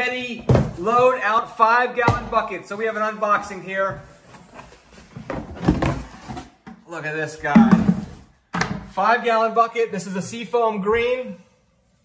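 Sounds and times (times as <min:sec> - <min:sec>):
scraping and knocking of box and bucket: 0:04.4 - 0:06.7, 0:07.4 - 0:08.3.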